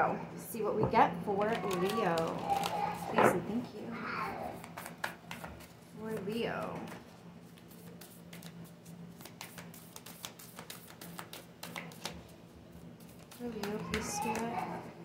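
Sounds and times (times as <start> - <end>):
cards being shuffled: 1.5 - 3.2, 4.5 - 14.9.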